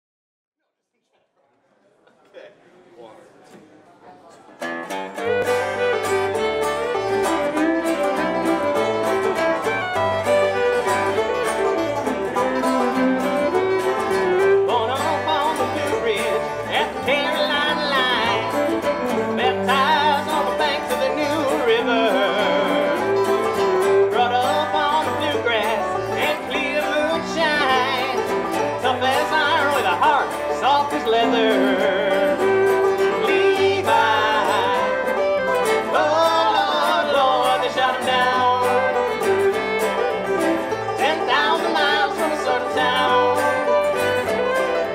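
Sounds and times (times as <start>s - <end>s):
bluegrass band playing: 4.5s - 44.9s
wavering fiddle melody: 4.8s - 44.9s.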